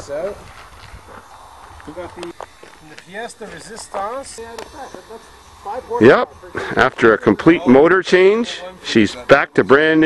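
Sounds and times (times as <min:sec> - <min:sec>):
people talking: 0:01.8 - 0:10.0.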